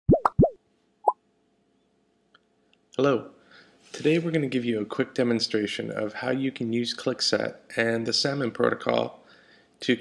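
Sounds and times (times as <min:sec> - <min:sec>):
cartoon bloop sound effects: 0:00.1 - 0:00.6.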